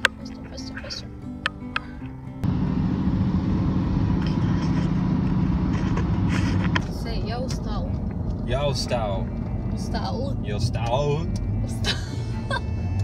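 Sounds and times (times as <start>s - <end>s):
voices: 0.0s - 1.1s, 5.7s - 12.6s
road and engine rumble in car: 0.0s - 13.0s.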